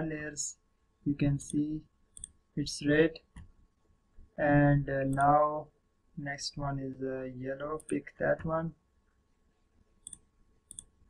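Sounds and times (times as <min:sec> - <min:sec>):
computer mouse clicks: 0:02.2 - 0:02.4, 0:10.0 - 0:11.0.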